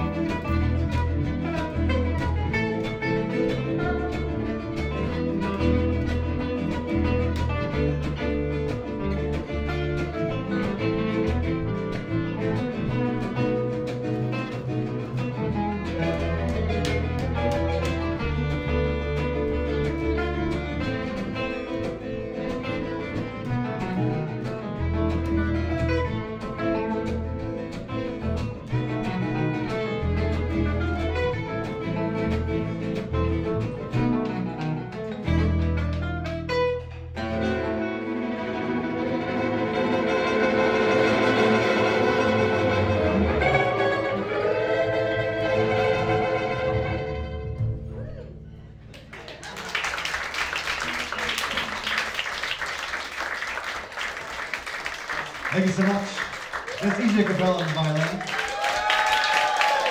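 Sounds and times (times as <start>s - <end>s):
violin bowing: 0.0s - 48.4s
acoustic guitars strumming: 0.0s - 48.9s
plucked upright bass: 0.0s - 49.2s.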